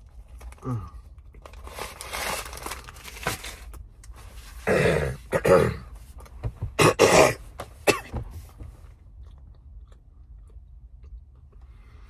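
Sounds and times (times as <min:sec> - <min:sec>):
man coughing: 0:04.6 - 0:05.9, 0:06.8 - 0:08.2.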